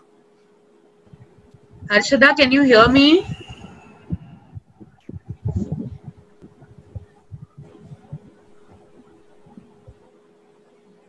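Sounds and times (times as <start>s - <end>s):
low thumps and rumbles: 1.1s - 10.1s.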